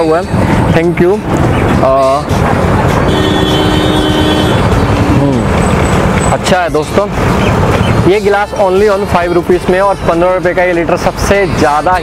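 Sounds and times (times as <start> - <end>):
engine running: 0.2 - 8.2.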